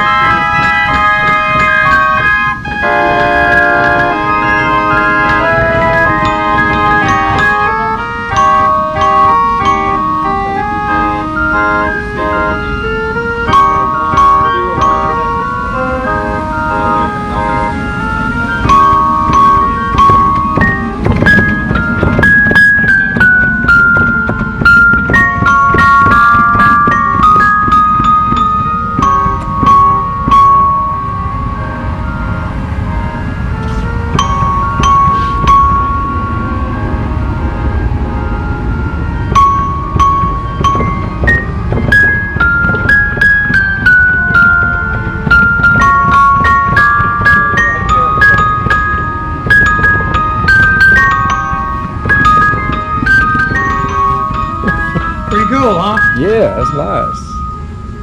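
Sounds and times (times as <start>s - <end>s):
sharp percussion strikes: 0.0s - 32.1s, 33.6s - 38.0s, 38.6s - 58.0s
glockenspiel bar ringing: 0.0s - 58.0s
pipe organ playing: 0.0s - 58.0s.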